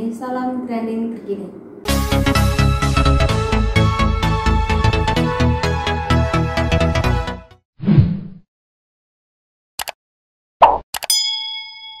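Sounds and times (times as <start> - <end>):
bell ding: 11.1 - 12.0.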